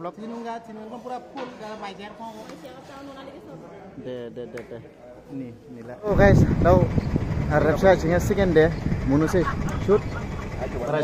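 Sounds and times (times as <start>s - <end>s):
man talking: 5.8s - 9.5s
road traffic rumble: 6.1s - 11.0s.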